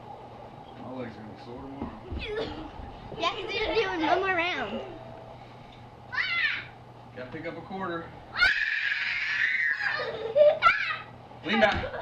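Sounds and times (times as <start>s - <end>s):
child screaming with excitement: 8.4s - 11.1s.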